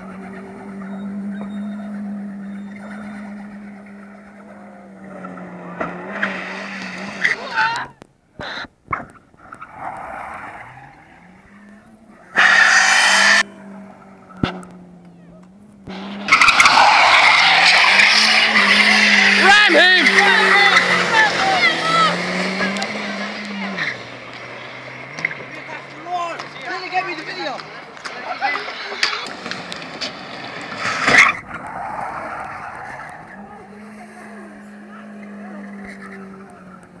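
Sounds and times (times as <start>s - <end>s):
car engine revving high: 0.0s - 8.7s, 9.5s - 37.0s
tyres squealing: 0.0s - 37.0s.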